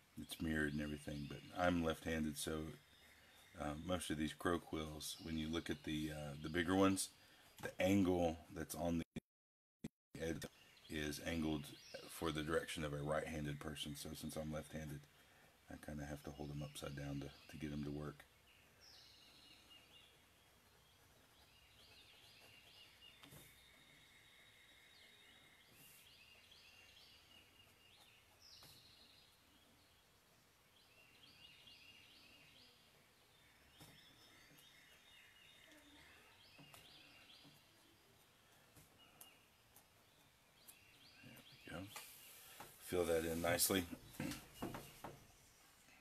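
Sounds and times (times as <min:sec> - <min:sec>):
faint birdsong chirping: 0:00.0 - 0:09.1, 0:10.2 - 0:46.0.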